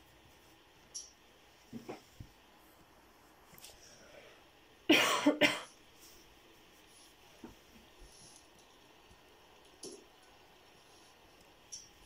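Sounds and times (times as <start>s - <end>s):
person coughing: 4.9s - 5.8s.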